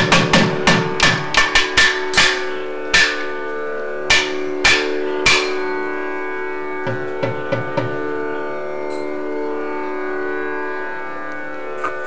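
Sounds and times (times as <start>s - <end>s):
drums struck hard: 0.0s - 2.4s
steady drone: 0.0s - 12.0s.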